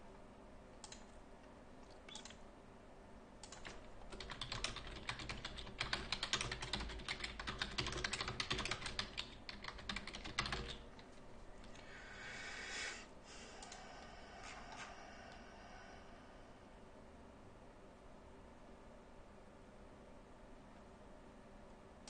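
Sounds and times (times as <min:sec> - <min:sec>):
computer keyboard typing: 0:02.1 - 0:02.4, 0:03.4 - 0:11.0.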